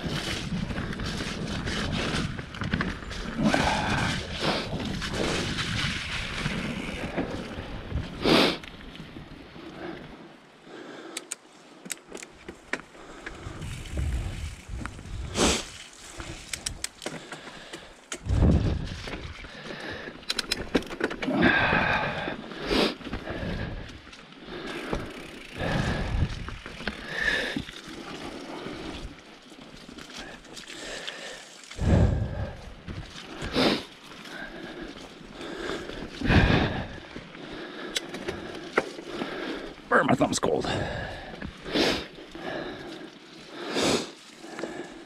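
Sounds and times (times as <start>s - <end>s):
bike rattling over trail: 0.0s - 10.0s, 11.6s - 45.0s
bike tyres on dirt: 0.0s - 45.0s.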